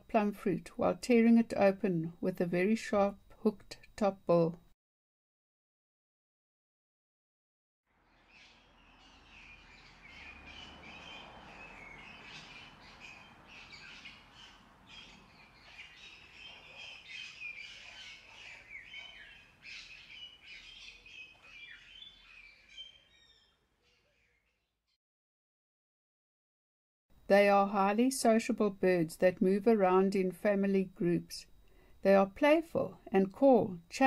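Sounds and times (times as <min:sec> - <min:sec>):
birds chirping: 0:07.9 - 0:25.0.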